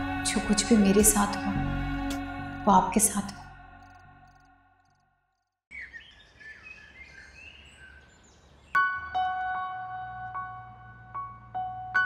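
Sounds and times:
background music: 0.0s - 4.4s, 8.8s - 12.0s
birds chirping: 5.7s - 10.3s.

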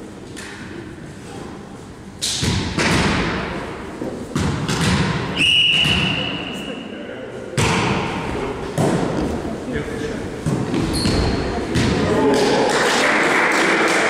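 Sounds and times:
volleyball slaps echoing: 2.2s - 3.7s, 4.3s - 6.4s, 7.6s - 9.4s, 10.4s - 14.0s
referee's whistle: 5.4s - 6.8s.

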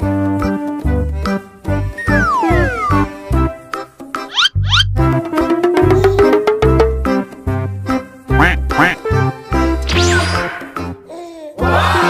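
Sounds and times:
upbeat background music: 1.8s - 11.1s
sliding cartoon-like calls: 2.0s - 3.2s, 4.2s - 5.0s.

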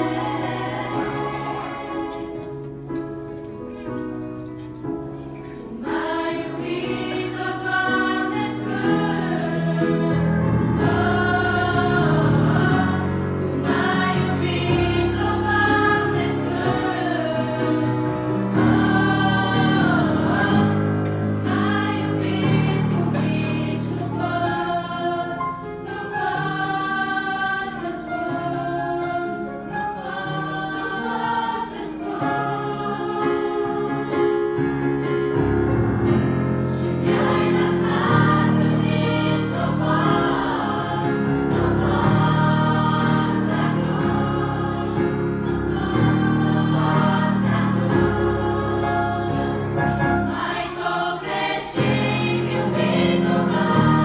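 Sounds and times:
girls' choir singing a hymn: 0.0s - 54.0s
low instrumental accompaniment: 30.0s - 54.0s.

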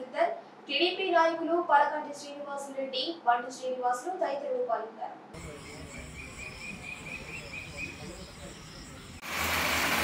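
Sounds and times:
cricket chirping: 5.4s - 9.2s.

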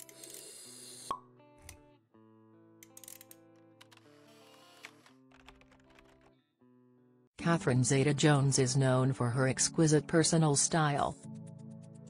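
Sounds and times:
soft background music: 0.0s - 6.3s, 7.4s - 12.0s.

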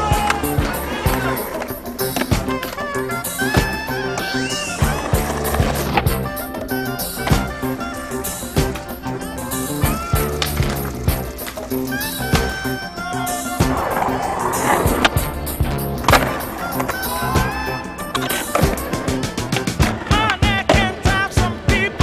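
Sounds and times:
music track: 0.0s - 22.0s
skateboard clacks: 0.0s - 22.0s
skateboard wheels rolling on concrete: 0.0s - 22.0s.

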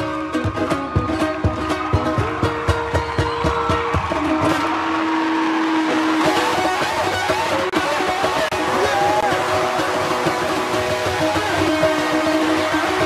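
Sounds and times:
ukulele plucked notes: 5.6s - 13.0s.

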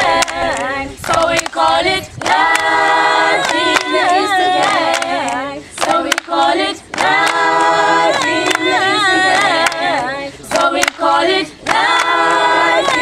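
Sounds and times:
choir singing a cappella: 0.0s - 13.0s.

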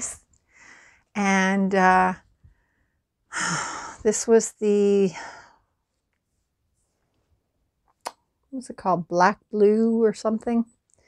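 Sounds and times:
woman speaking: 1.2s - 2.2s, 3.4s - 5.4s, 8.5s - 10.7s.

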